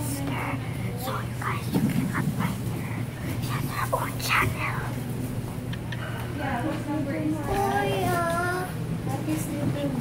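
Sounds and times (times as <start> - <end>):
children whispering: 0.0 - 5.0
steady low hum: 0.0 - 10.0.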